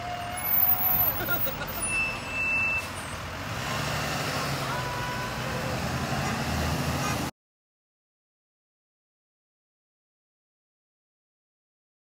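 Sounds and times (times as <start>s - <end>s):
bus engine rumble: 0.0s - 7.3s
high beep: 1.8s - 3.0s.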